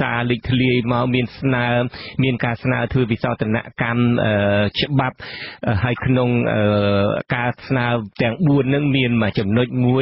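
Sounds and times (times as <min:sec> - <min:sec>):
man reading radio news: 0:00.0 - 0:10.0.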